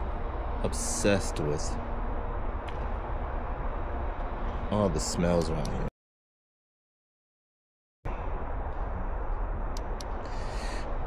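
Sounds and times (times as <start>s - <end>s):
low outdoor rumble: 0.0s - 5.9s, 8.1s - 11.0s.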